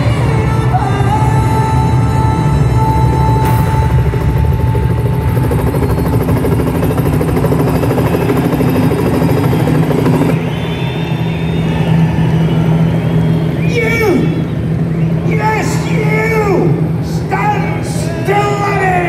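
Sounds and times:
helicopter rotor chopping: 0:00.0 - 0:19.0
person shouting over speakers: 0:13.6 - 0:14.5, 0:15.2 - 0:19.0.

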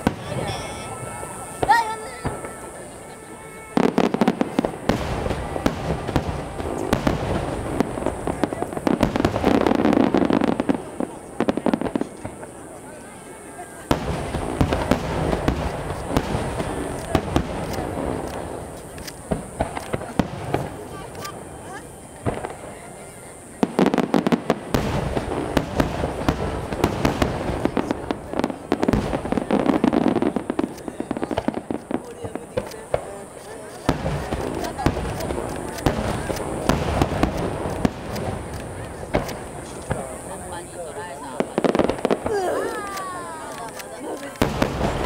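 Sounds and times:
firework shells booming: 0:00.0 - 0:12.8, 0:13.8 - 0:45.0
firework crackling: 0:00.0 - 0:45.0.

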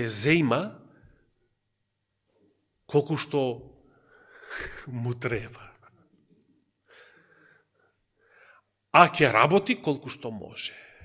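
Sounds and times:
man speaking: 0:00.0 - 0:00.9, 0:02.9 - 0:03.7, 0:04.5 - 0:05.9, 0:08.9 - 0:11.0.

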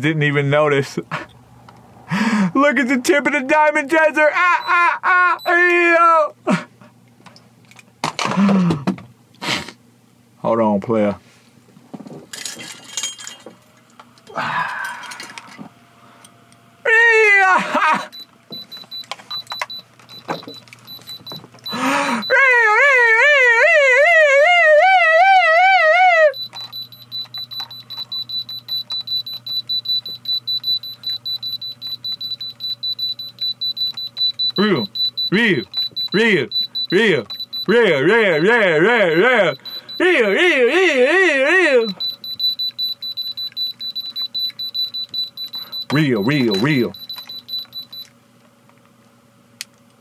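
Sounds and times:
warbling vocal wail: 0:14.3 - 0:15.4, 0:16.9 - 0:18.1, 0:21.8 - 0:26.4
diamond tester high-pitched tone: 0:18.1 - 0:25.5, 0:26.3 - 0:48.1.

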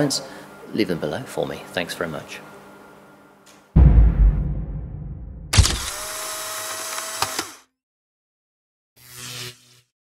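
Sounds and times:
camera clicks: 0:05.6 - 0:07.6
camera motor whirring: 0:05.6 - 0:07.7.

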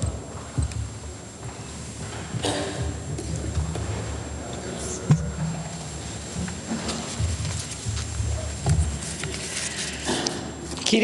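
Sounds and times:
muffled thumps and knocks: 0:05.1 - 0:09.4.

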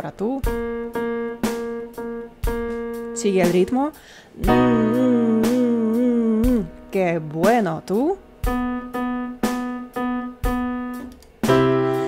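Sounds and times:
electronic keyboard note: 0:00.4 - 0:03.8, 0:04.4 - 0:07.0, 0:07.9 - 0:12.0.

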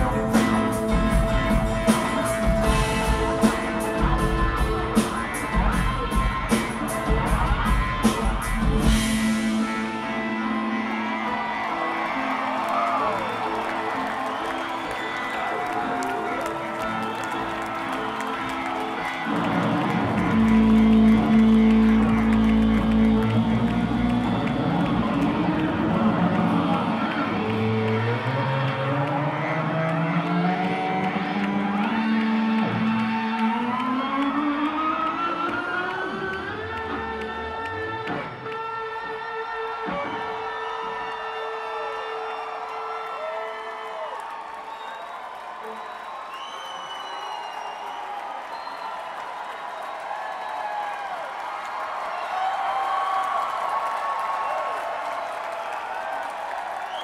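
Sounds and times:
rock band playing live: 0:00.0 - 0:41.5.

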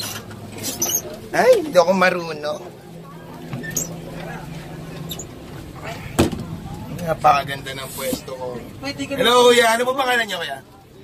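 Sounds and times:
bus low hum: 0:00.0 - 0:11.0
voices: 0:00.0 - 0:11.0.

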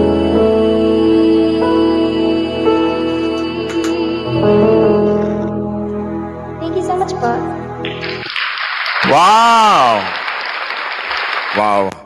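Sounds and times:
applause: 0:07.8 - 0:12.0.

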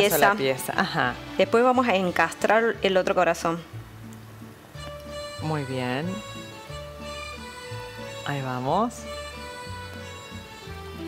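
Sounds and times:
light instrumental tune with bass: 0:00.0 - 0:11.0.

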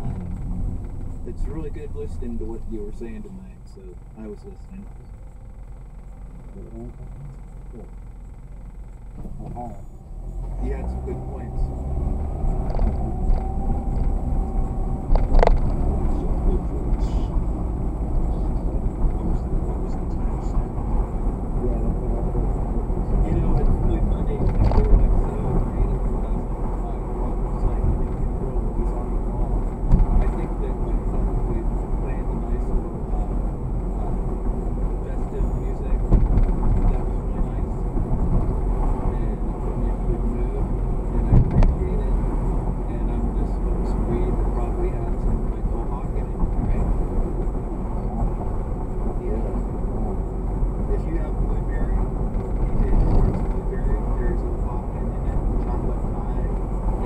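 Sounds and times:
in-cabin road and engine rumble: 0:00.0 - 0:57.0.

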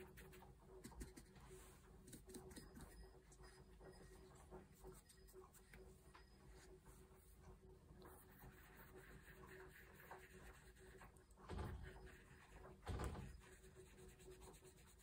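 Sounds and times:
brush dabbing on paper: 0:00.0 - 0:04.2, 0:08.0 - 0:12.7, 0:13.3 - 0:15.0
soft brushing sounds: 0:00.4 - 0:02.4.

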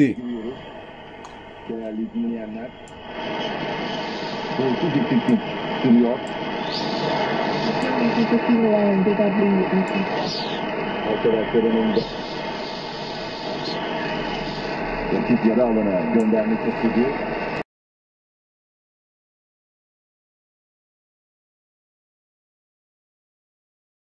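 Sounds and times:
voice over hissy radio: 0:00.0 - 0:00.6, 0:04.0 - 0:17.2
radio band noise: 0:00.0 - 0:17.6.

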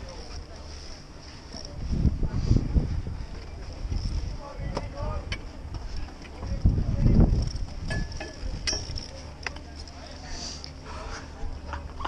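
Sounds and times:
wind buffeting microphone: 0:01.6 - 0:09.1.

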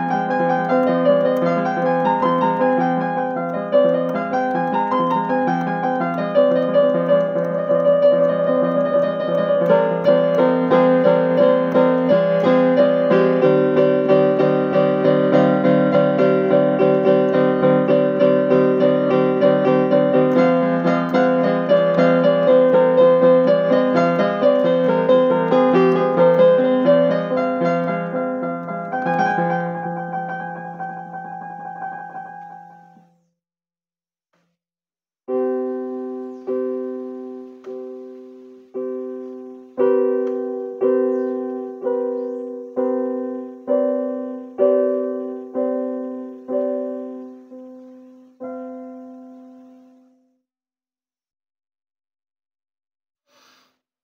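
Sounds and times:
improvised piano piece: 0:00.0 - 0:33.3, 0:35.3 - 0:50.2.

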